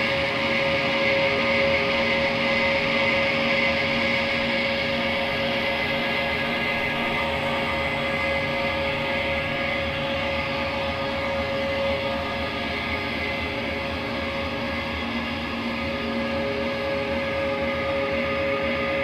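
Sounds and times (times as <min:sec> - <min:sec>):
distorted guitar and bass droning: 0:00.0 - 0:19.0.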